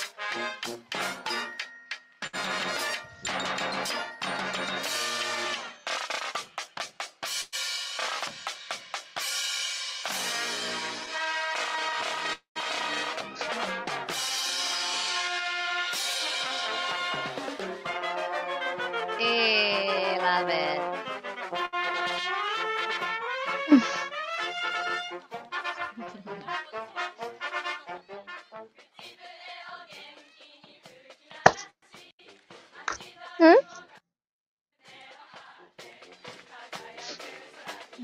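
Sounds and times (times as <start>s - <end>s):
brass instruments playing: 0.0s - 1.6s, 2.4s - 5.7s, 10.2s - 28.7s.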